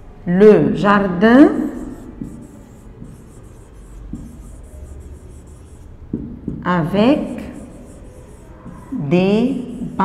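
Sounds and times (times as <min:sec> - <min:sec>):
marker pen writing on whiteboard: 0:01.3 - 0:10.0.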